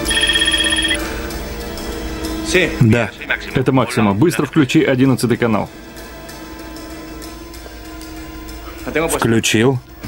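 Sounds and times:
mobile phone ringing: 0.0 - 1.2.

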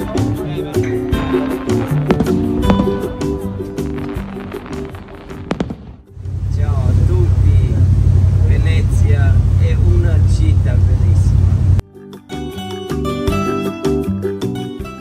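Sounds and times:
music with pops: 1.2 - 5.8
boat engine drone: 6.2 - 11.8
man talking: 6.4 - 11.6.

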